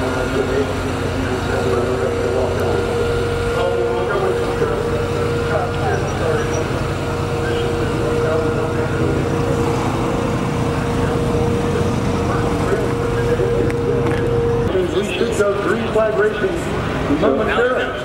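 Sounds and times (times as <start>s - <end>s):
engine running: 0.0s - 18.0s.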